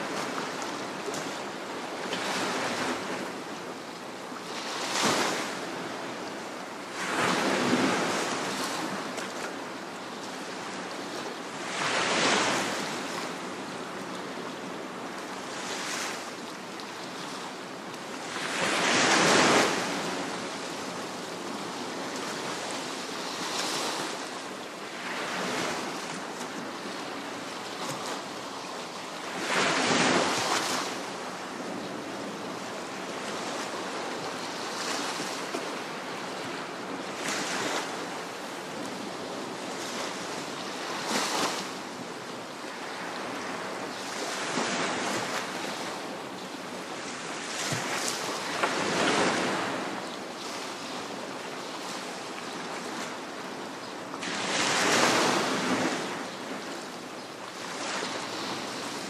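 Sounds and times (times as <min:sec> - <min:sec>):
waves washing onto beach: 0:00.0 - 0:59.0.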